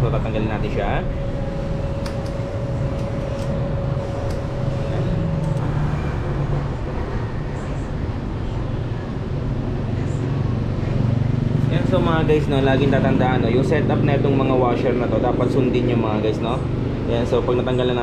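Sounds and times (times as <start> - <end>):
faint steady whine: 0.0 - 18.0.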